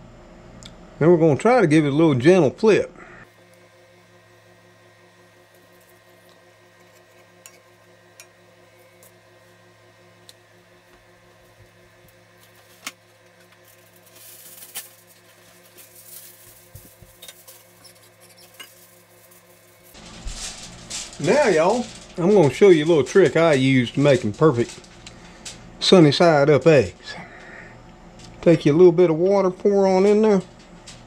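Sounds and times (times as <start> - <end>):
crackling sizzle: 3.2 - 31.0.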